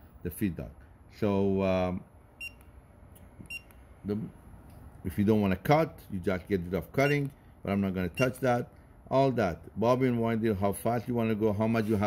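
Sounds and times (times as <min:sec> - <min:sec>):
short electronic beep: 0:08.2 - 0:08.4.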